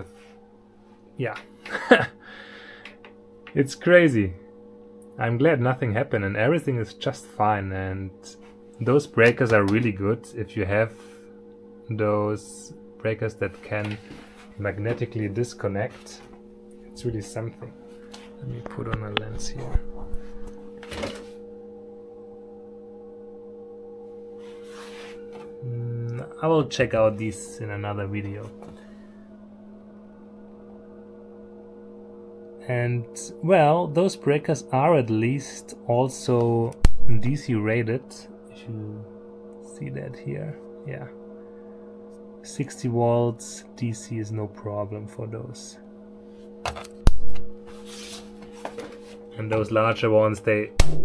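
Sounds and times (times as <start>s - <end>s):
electrical hum: 0.0s - 51.0s
heavy low thud: 18.9s - 21.2s, 36.8s - 37.3s, 47.0s - 47.7s, 50.8s - 51.0s
brief rub: 24.4s - 25.4s, 47.3s - 49.3s
circuit breaker toggle snap: 50.8s - 51.0s.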